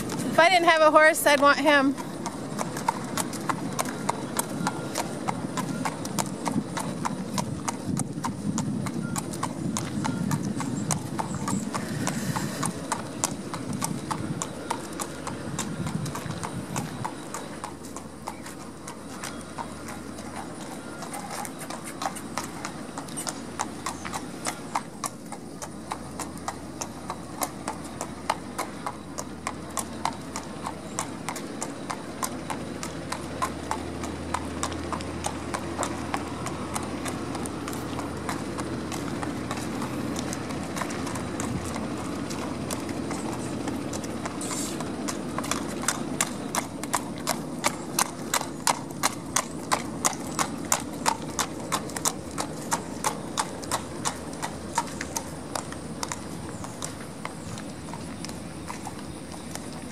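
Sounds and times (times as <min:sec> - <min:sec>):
horse hooves clip-clopping on pavement: 0:00.0 - 0:59.9.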